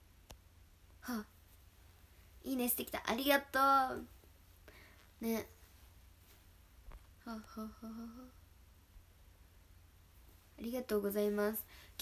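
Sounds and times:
woman's soft hummed laugh: 7.2s - 8.4s.

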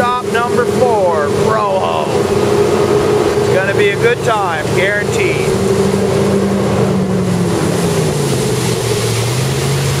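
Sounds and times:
boat engine running: 0.0s - 10.0s
rush of wind and water: 0.0s - 10.0s.

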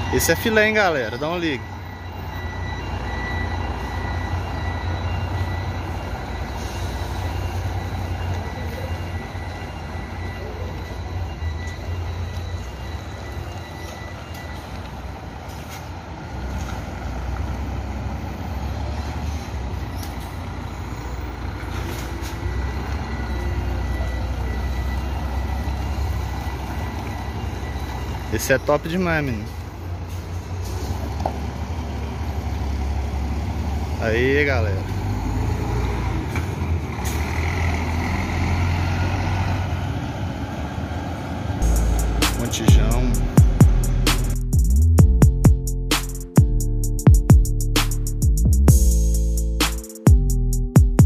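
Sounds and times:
coach engine rumble: 39.3s - 50.8s.

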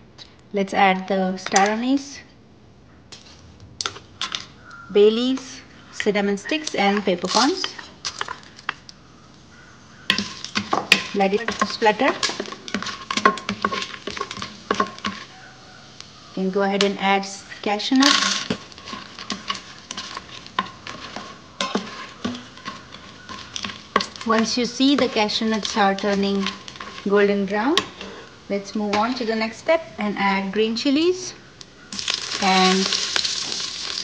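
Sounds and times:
faint steady hiss: 0.0s - 34.0s
spices sizzling in hot fat: 3.2s - 29.6s, 31.7s - 34.0s
spices clicking into metal pot: 10.1s - 15.3s, 18.0s - 27.0s.

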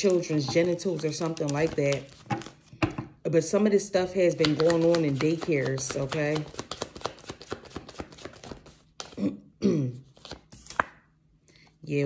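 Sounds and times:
cards being shuffled and tapped: 0.0s - 3.2s, 4.1s - 9.2s, 10.0s - 11.1s.

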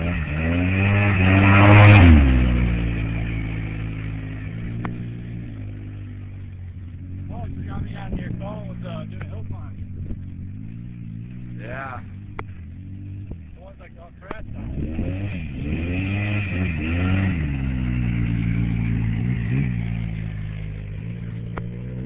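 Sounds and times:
atv engine revving: 0.0s - 22.0s.

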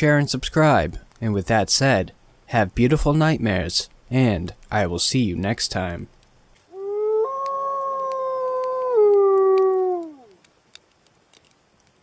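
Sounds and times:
wolf howling: 6.7s - 10.4s.

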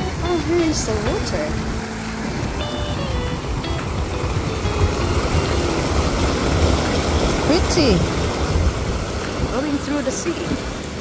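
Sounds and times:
water cascading into sea: 0.0s - 11.0s.

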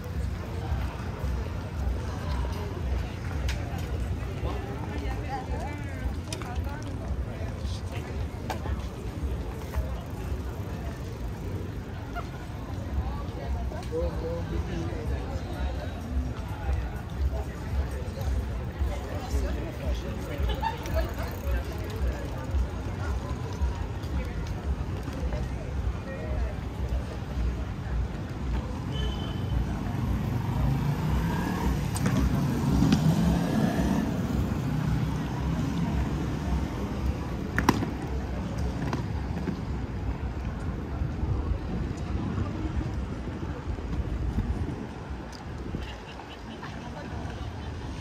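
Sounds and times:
low street rumble: 0.0s - 48.0s
voices of passersby: 0.0s - 48.0s.

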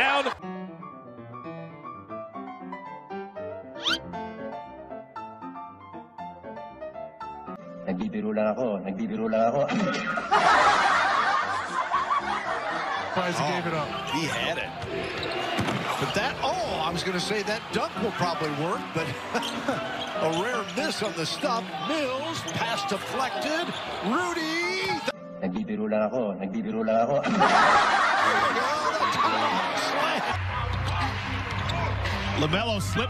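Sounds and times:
people laughing: 9.8s - 14.1s, 16.1s - 24.1s, 27.2s - 31.4s
cackling laughter: 9.9s - 13.2s, 27.2s - 30.4s.

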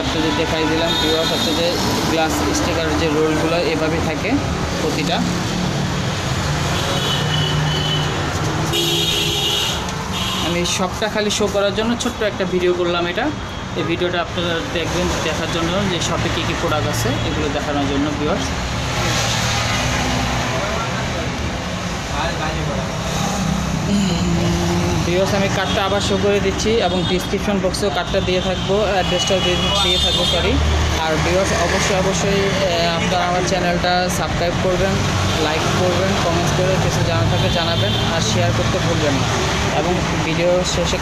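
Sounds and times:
people talking: 0.0s - 5.3s, 10.5s - 18.5s, 22.1s - 22.9s, 23.9s - 41.0s
road traffic noise: 0.0s - 41.0s
vehicle running nearby: 14.6s - 26.8s
low engine drone: 23.1s - 25.4s.

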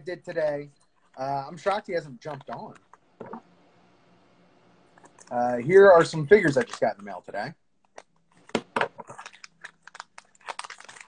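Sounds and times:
packaging crinkling and tearing: 6.0s - 7.2s, 7.9s - 11.0s.

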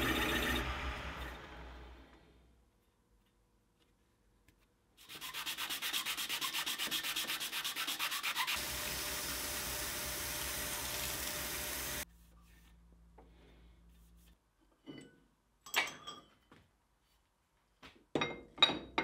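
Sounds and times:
lathe humming: 0.0s - 2.0s, 8.6s - 12.0s
sandpaper rubbing metal disc: 5.0s - 9.4s.

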